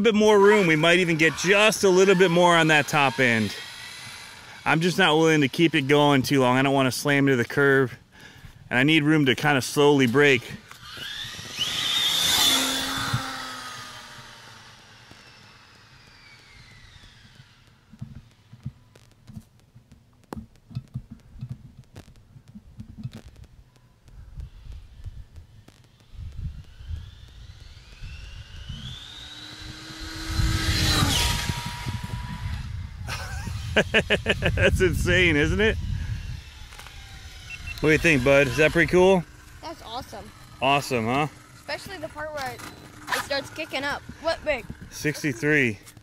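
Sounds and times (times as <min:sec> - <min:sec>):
rc car motor whine passing: 0:00.0 - 0:08.0, 0:08.6 - 0:19.1, 0:23.1 - 0:46.0
scattered clicks: 0:16.0 - 0:29.2.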